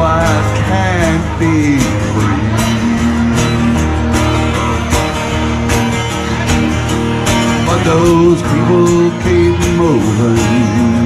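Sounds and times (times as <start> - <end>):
acoustic guitars strumming: 0.0 - 11.0
sustained bass line: 0.0 - 11.0.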